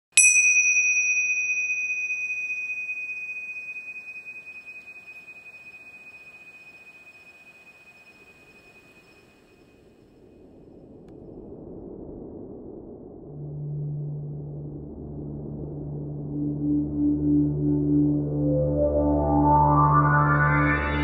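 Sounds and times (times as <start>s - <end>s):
struck metallic bell tone: 0.1s - 9.4s.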